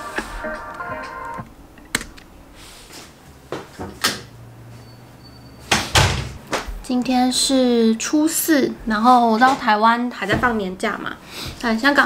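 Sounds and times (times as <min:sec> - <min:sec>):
background music: 0:00.0 - 0:01.5.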